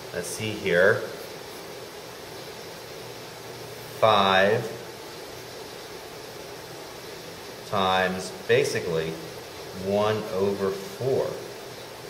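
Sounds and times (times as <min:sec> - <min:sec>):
steady recording hiss: 0:00.0 - 0:12.0.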